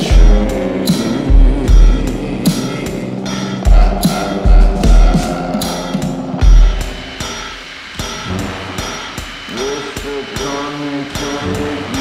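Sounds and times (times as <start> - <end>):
loud low bass hit: 0.0 - 7.3
drums and cymbals: 0.0 - 12.0
pitched instrument part: 0.0 - 12.0.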